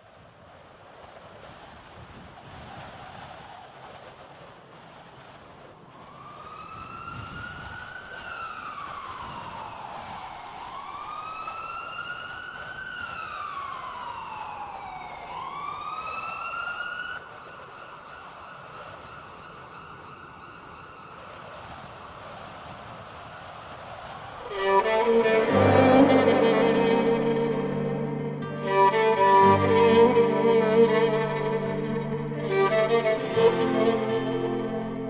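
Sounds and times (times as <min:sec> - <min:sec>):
steady rushing background noise: 0:00.0 - 0:10.6, 0:17.2 - 0:25.1
emergency siren wailing: 0:05.9 - 0:21.6, 0:24.4 - 0:35.0.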